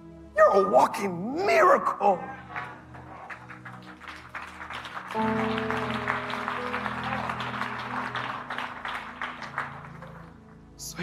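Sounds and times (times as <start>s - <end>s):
congregation applauding: 2.4s - 10.8s
held musical chord: 5.1s - 10.5s.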